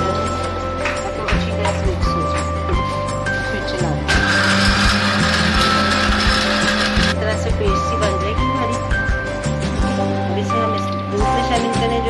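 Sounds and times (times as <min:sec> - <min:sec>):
blender grinding: 0:04.1 - 0:07.2.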